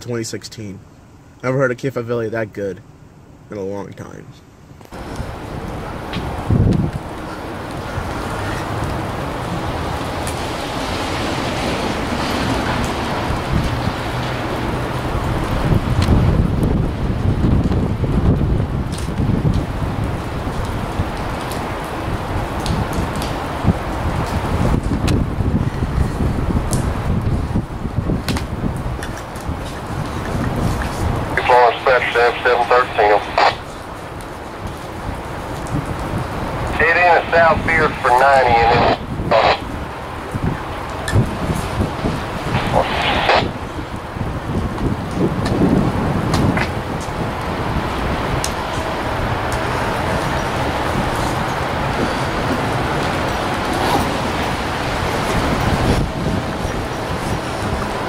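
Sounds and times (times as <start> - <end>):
wind noise on microphone: 4.7 - 58.0
rain: 4.9 - 58.0.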